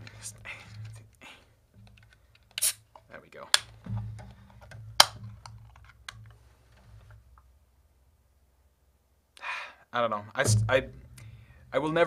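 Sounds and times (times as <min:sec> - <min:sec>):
objects being handled clicking: 0:01.8 - 0:06.4
short hiss: 0:02.6 - 0:02.9
person speaking: 0:10.0 - 0:12.0.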